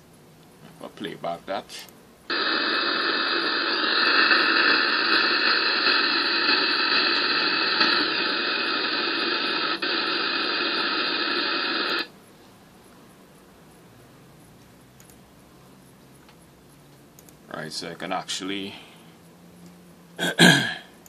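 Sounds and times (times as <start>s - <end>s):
radio static hiss: 0.6s - 12.2s, 20.2s - 20.9s.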